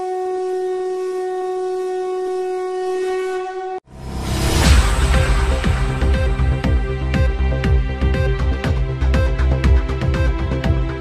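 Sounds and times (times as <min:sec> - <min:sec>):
sustained musical note: 0:00.0 - 0:09.1.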